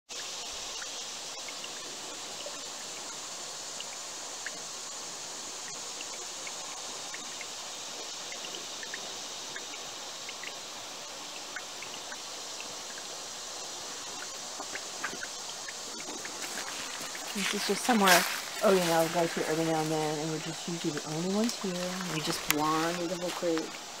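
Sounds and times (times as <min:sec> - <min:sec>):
small high water plinks: 0:00.1 - 0:24.0
water trickling over rocks: 0:00.1 - 0:24.0.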